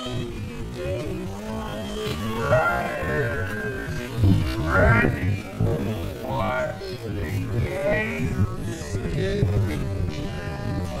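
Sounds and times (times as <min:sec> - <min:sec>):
slowed deep voices: 0:00.0 - 0:11.0
steady low hum: 0:00.0 - 0:11.0.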